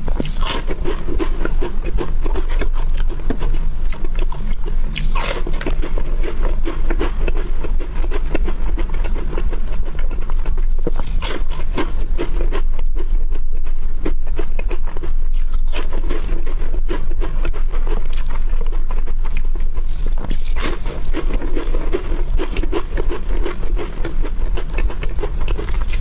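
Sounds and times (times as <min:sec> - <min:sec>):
steady low hum: 0:00.0 - 0:26.0
wafer bar crunching and chewing: 0:00.0 - 0:26.0.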